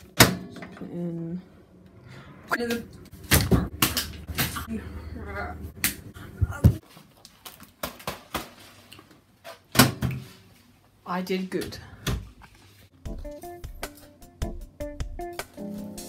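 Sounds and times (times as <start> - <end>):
low steady hum: 0.0 - 6.8.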